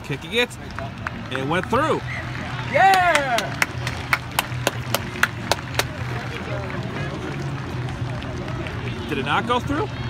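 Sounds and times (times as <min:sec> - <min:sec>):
person clapping hands: 0:02.8 - 0:06.1.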